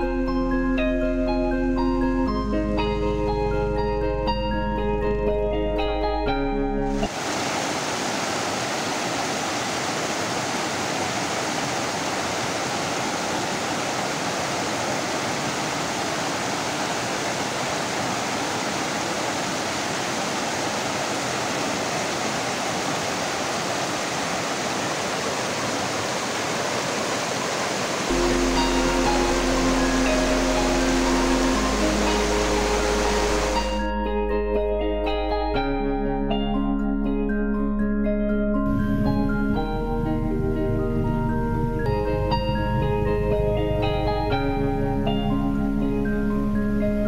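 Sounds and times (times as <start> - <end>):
soft instrumental music: 0.0 - 7.1, 28.1 - 47.0
mountain stream rushing over boulders: 7.0 - 33.8.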